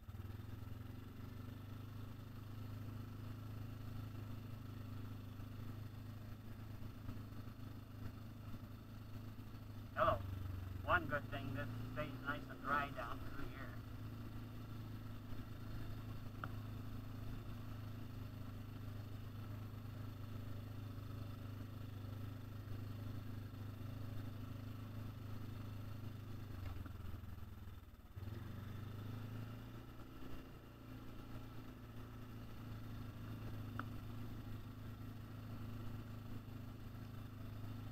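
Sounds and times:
atv engine running: 0.0 - 37.9.

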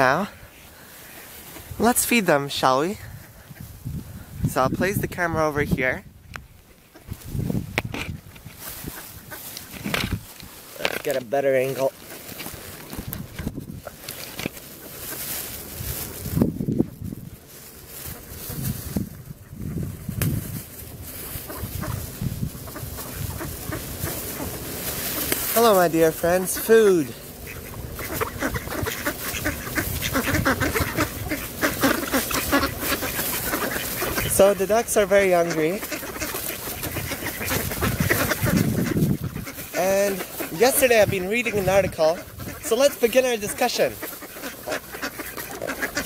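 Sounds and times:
feet and bills rustling leaves: 0.0 - 6.0, 6.6 - 46.0
ducks calling softly: 0.0 - 46.0.

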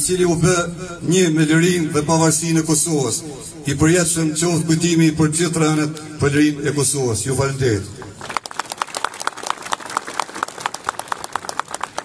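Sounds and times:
crowd applauding: 8.2 - 12.0.

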